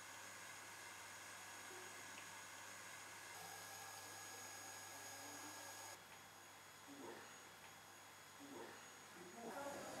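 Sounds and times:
faint steady hum and hiss: 0:00.0 - 0:10.0.

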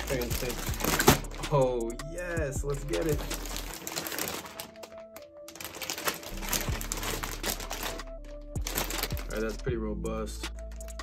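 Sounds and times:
plastic bag crinkling: 0:00.0 - 0:01.5, 0:02.8 - 0:09.6
background music: 0:00.0 - 0:11.0.

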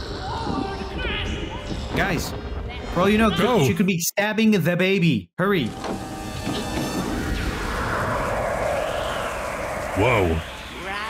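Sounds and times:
film music: 0:05.6 - 0:11.0
rushing rumbling effects: 0:06.2 - 0:11.0.

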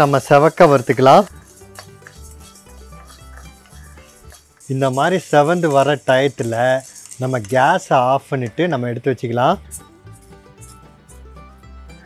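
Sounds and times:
man talking: 0:00.0 - 0:01.4, 0:04.7 - 0:09.6
dry lentils rattling in pan: 0:00.0 - 0:08.6.

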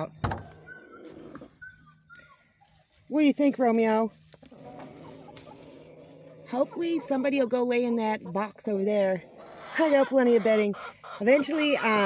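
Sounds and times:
chickens calling softly: 0:04.2 - 0:12.0.

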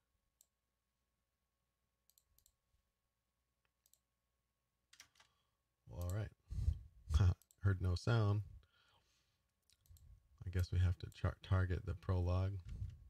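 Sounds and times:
computer mouse clicks: 0:02.1 - 0:02.6, 0:03.8 - 0:04.0, 0:09.6 - 0:10.0.

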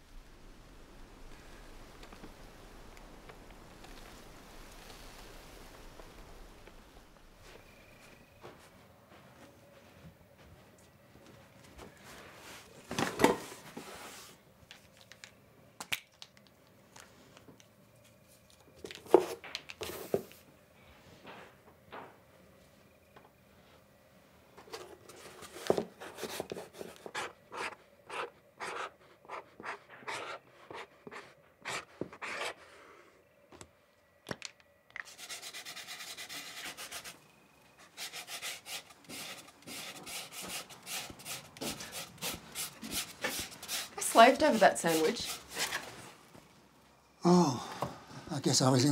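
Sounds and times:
small objects clicking and tapping: 0:14.7 - 0:17.7, 0:33.6 - 0:35.1
sanding wood by hand: 0:35.1 - 0:37.2, 0:37.9 - 0:45.6.

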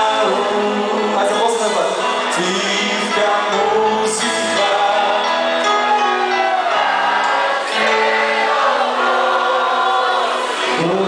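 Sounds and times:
live pop song group singing: 0:00.0 - 0:11.0.

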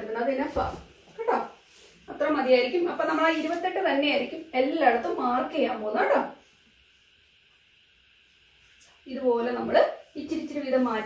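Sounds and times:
woman speaking: 0:00.0 - 0:06.4, 0:09.1 - 0:11.0
faint room hiss: 0:00.0 - 0:11.0.

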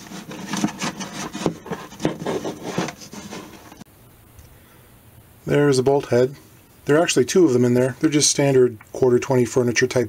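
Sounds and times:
paper rubbing on guitar body: 0:00.0 - 0:03.8.

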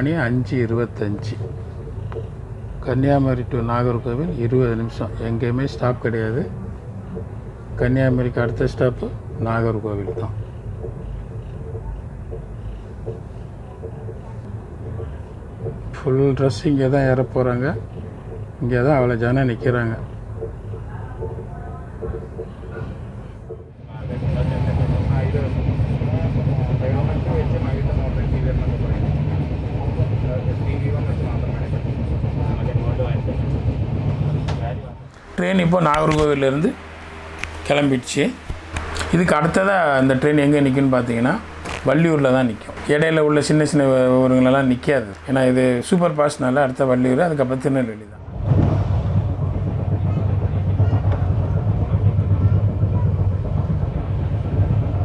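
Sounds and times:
low rumble of a train: 0:00.0 - 0:55.0
people chattering: 0:18.6 - 0:23.3, 0:34.7 - 0:48.0, 0:49.4 - 0:54.3.

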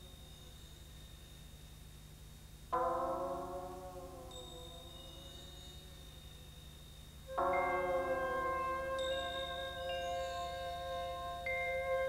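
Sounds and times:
bell-like struck chord: 0:02.8 - 0:12.0.

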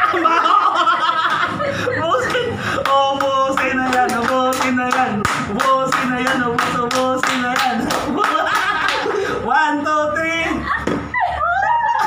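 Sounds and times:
person singing: 0:02.1 - 0:08.1
people clapping in rhythm: 0:02.2 - 0:09.2.

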